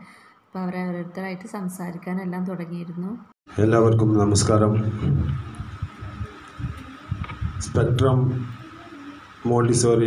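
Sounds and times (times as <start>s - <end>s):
man speaking over loudspeakers: 3.6s - 5.4s, 7.6s - 8.6s, 9.4s - 10.0s
irregular low rumble: 4.3s - 8.6s.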